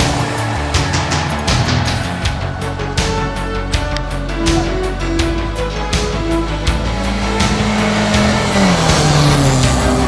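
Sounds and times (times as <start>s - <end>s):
background music with beat: 0.0s - 10.0s
rally car engine passing: 0.0s - 10.0s.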